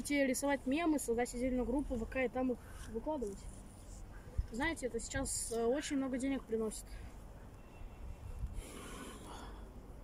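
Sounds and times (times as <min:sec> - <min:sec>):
person breathing out through nose: 0:08.5 - 0:09.8.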